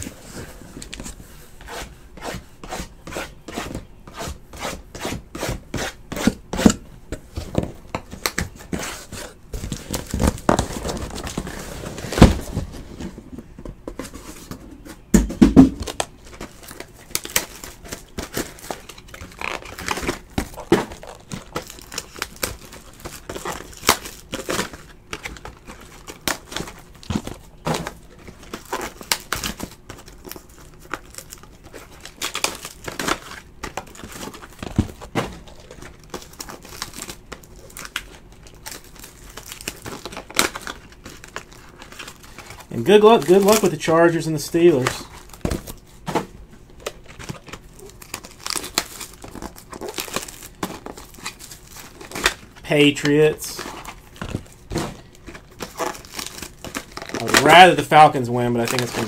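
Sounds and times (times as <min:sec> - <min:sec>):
foil wrapper crinkling: 0:15.8 - 0:46.0, 0:46.6 - 0:59.0.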